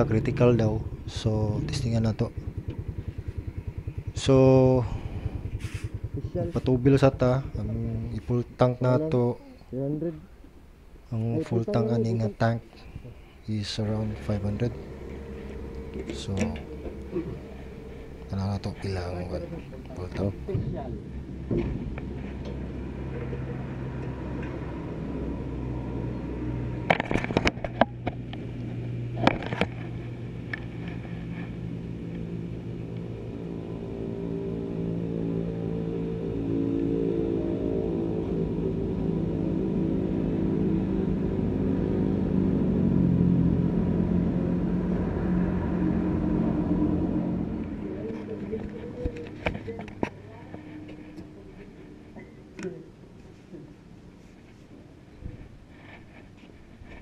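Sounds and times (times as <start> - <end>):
motor humming: 12.8 - 27.0.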